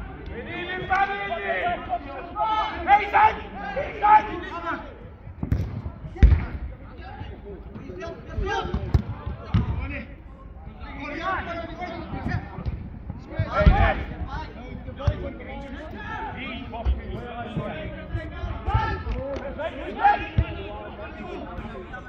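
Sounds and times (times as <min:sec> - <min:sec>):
players shouting: 0:00.0 - 0:05.2, 0:07.2 - 0:12.5, 0:13.2 - 0:22.0
football kicked thuds: 0:08.6 - 0:09.8.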